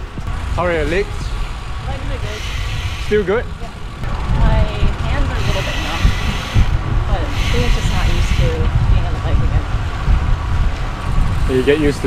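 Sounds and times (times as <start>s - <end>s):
wind buffeting microphone: 0.0s - 12.0s
faint voices: 3.1s - 9.6s.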